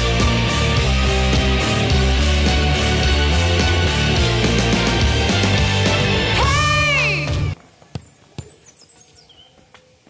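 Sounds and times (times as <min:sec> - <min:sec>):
small birds chirping: 0:07.8 - 0:10.0.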